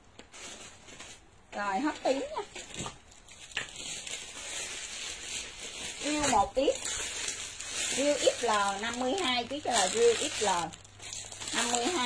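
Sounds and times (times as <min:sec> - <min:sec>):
clothing fabric rustling: 0:00.2 - 0:12.0.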